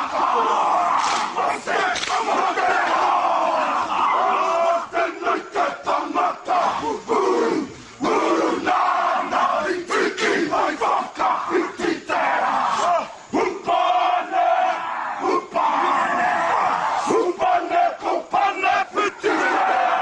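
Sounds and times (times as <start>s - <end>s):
men shouting rhythmic chant: 0.0s - 20.0s.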